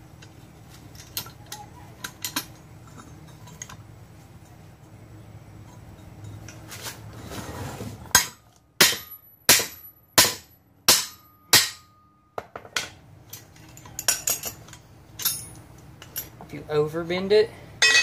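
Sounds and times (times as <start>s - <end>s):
hammer striking steel plate: 8.2s - 12.1s, 17.8s - 18.0s
light metal clinks and taps: 12.4s - 16.5s.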